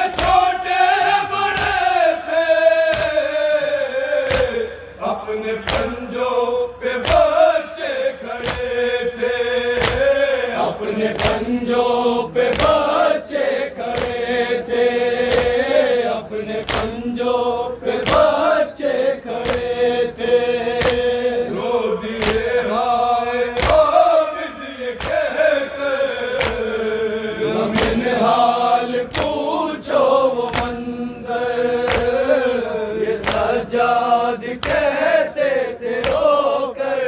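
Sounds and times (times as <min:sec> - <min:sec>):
men chanting into a microphone: 0:00.0 - 0:37.0
rhythmic chest-beating slaps: 0:00.0 - 0:37.0.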